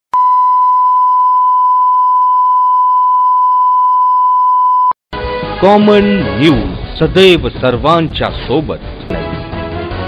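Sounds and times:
steady test tone beep: 0.2s - 5.0s.

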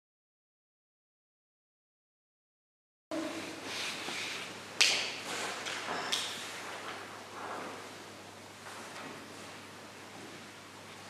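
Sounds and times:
rustling and shuffling: 5.2s - 8.0s, 8.6s - 10.5s.

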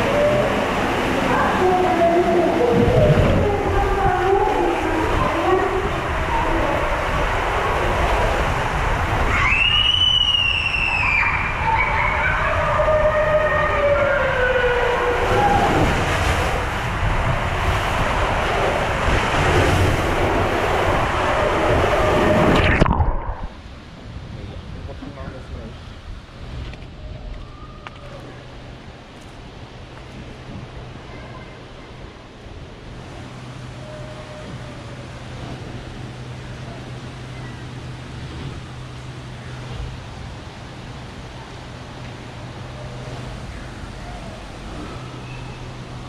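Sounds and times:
water rushing through slide tube: 0.0s - 24.1s.

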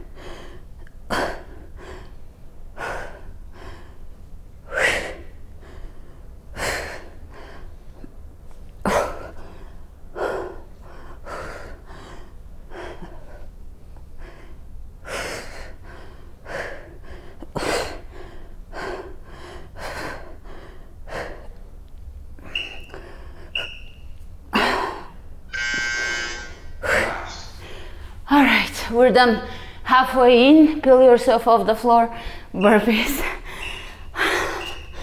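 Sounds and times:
woman breathing hard: 0.0s - 8.2s, 8.8s - 21.7s, 22.4s - 28.3s, 29.4s - 29.9s, 32.1s - 35.0s.

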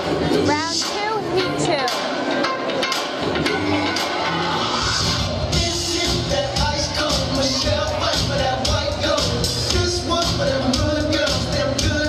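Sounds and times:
cha cha music: 0.0s - 12.0s.

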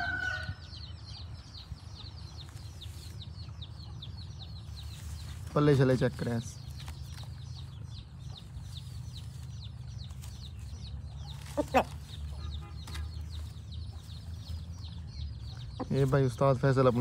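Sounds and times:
rooster crowing: 0.0s - 0.7s
small birds chirping: 0.0s - 17.0s.

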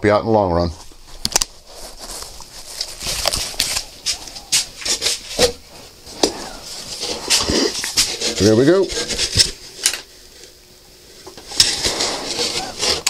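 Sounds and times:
respirator handling rustles and clicks: 0.8s - 10.6s, 11.2s - 13.0s.

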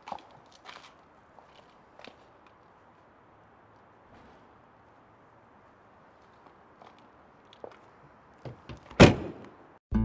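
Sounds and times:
car door slamming: 9.0s - 9.4s.

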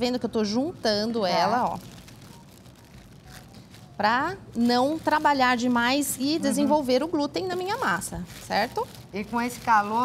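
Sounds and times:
plastic bag crinkling: 0.0s - 10.0s.

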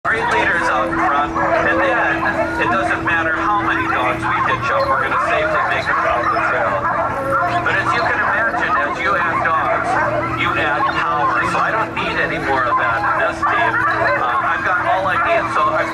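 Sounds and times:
dogs barking and howling: 0.1s - 15.9s
steady hum: 0.1s - 15.9s.

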